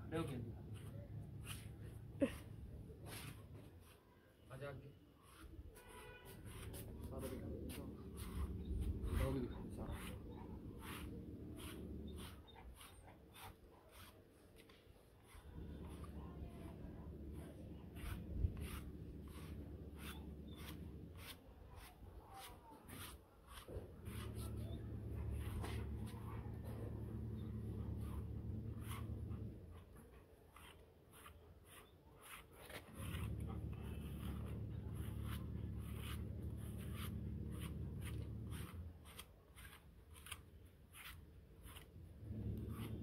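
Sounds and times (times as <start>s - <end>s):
brush scratching through dog fur: 0.0s - 43.0s.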